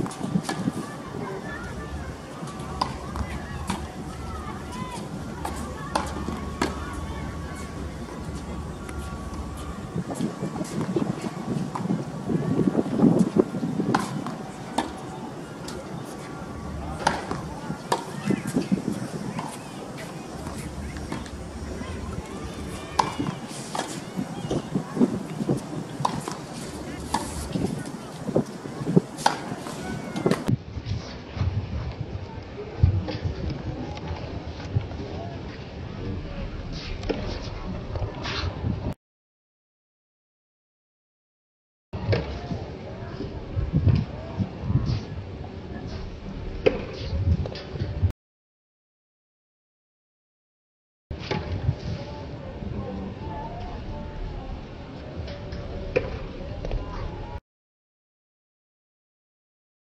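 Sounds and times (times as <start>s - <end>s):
background voices: 0.0s - 30.5s
low background noise: 0.0s - 38.9s, 51.2s - 57.4s
racket striking tennis ball: 13.2s - 15.0s, 17.0s - 21.4s, 23.0s - 24.7s, 25.3s - 30.5s.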